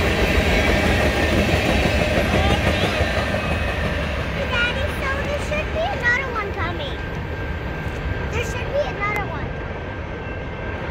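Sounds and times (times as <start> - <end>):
freight train rumbling: 0.0 - 10.9
children's voices: 2.3 - 3.0, 4.3 - 7.2, 8.3 - 9.6.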